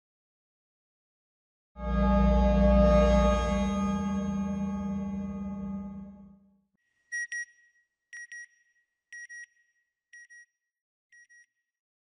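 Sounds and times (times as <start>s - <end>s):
synthesized music chord: 1.8s - 6.4s.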